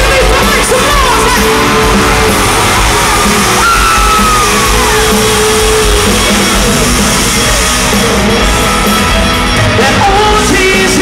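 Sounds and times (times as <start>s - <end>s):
country-rock band playing: 0.0s - 11.0s
crowd yelling and cheering: 0.0s - 11.0s.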